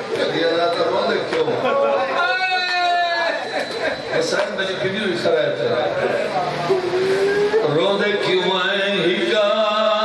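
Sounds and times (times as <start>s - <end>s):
man chanting into microphone: 7.6s - 10.0s.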